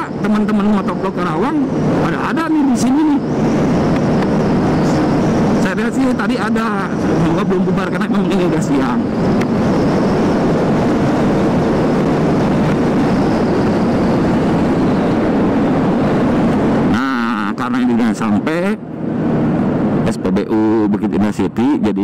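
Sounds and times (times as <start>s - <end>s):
wind rush on microphone: 0.0s - 22.0s.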